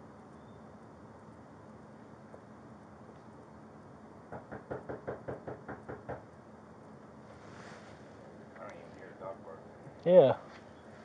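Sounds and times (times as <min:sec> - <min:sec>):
knocking on a door: 0:04.3 - 0:06.3.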